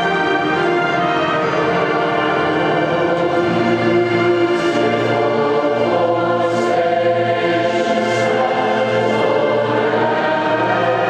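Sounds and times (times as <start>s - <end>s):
choir singing held chords: 0.0s - 11.0s
orchestral accompaniment: 0.0s - 11.0s.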